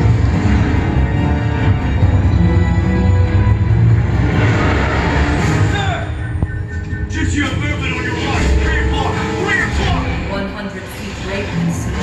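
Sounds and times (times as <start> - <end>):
tense music score: 0.0 - 12.0.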